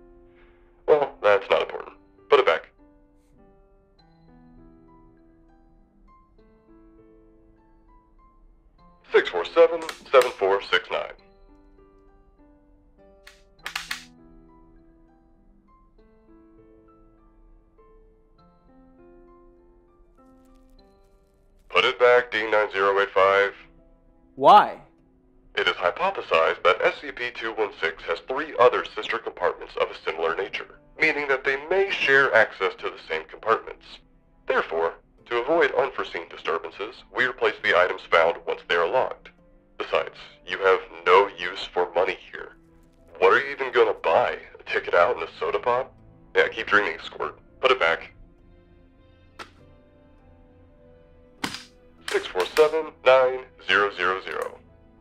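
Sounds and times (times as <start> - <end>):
faint background music: 0.0 - 55.0
person speaking: 9.2 - 10.6, 24.4 - 24.8, 51.4 - 54.6.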